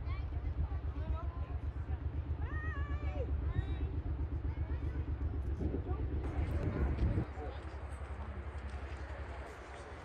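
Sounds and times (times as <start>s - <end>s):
steady low rumble: 0.0s - 10.0s
distant voices: 0.3s - 10.0s.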